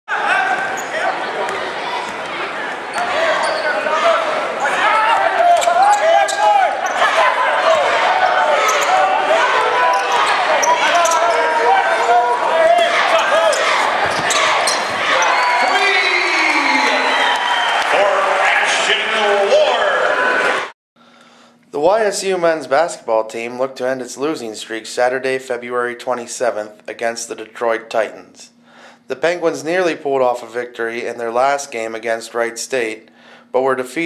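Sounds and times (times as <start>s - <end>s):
voices of players and spectators: 0.1s - 20.7s.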